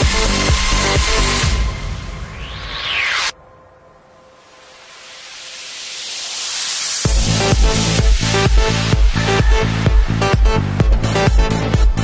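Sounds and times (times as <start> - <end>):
dance music beat: 0.0 - 1.6, 6.8 - 12.0
rising synth sweep: 1.2 - 11.8
white-noise riser hissing: 1.9 - 11.7.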